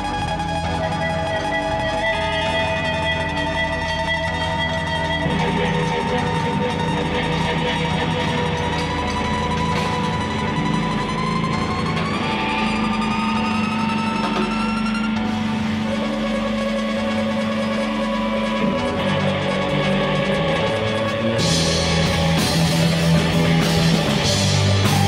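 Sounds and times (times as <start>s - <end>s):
electric guitars droning: 0.0s - 25.0s.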